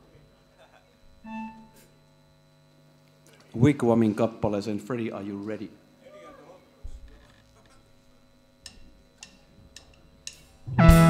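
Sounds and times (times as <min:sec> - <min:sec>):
faint amplifier hum: 0:00.0 - 0:11.0
electronic keyboard note: 0:01.2 - 0:02.0, 0:10.7 - 0:11.0.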